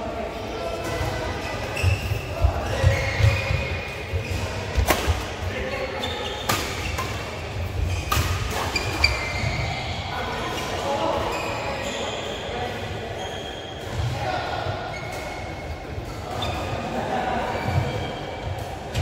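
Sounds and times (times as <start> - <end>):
murmur of voices: 0.0 - 19.0
shoe squeaks on court floor: 7.9 - 10.0, 10.6 - 13.9.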